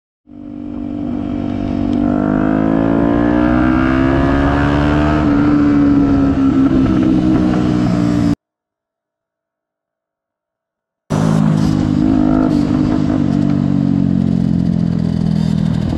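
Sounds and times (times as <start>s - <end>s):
motorcycle engine accelerating: 0.2s - 8.4s, 11.1s - 15.9s.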